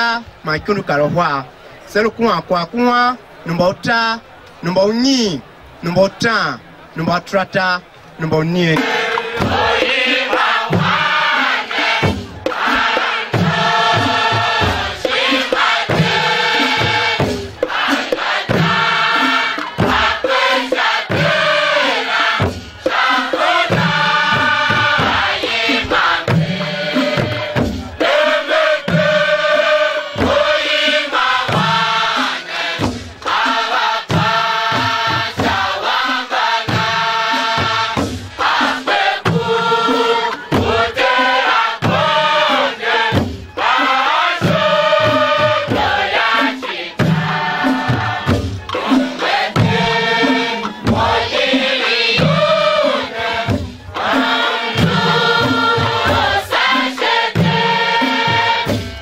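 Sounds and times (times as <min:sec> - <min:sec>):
group of voices chanting: 0:08.7 - 0:59.0
hand drums beating: 0:08.7 - 0:59.0
women singing a hymn: 0:08.8 - 0:59.0.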